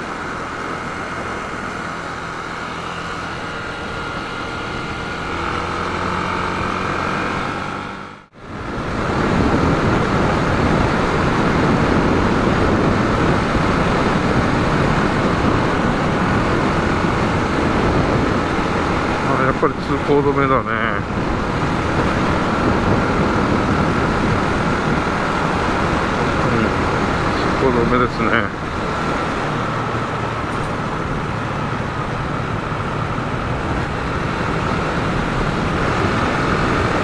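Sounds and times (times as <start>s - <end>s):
motorcycle engine cruising: 0.0s - 37.0s
wind and road noise: 0.0s - 37.0s.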